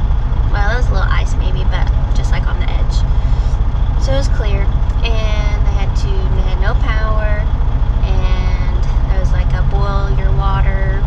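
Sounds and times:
truck engine idling: 0:00.0 - 0:11.0
woman talking: 0:00.5 - 0:11.0.

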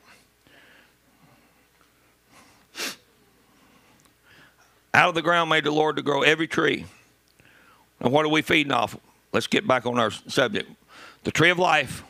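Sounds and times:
man sniffing sharply: 0:02.3 - 0:03.1.

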